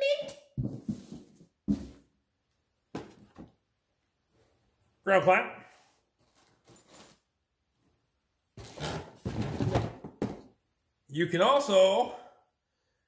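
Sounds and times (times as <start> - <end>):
cables and packaging rustling: 6.2 - 7.3.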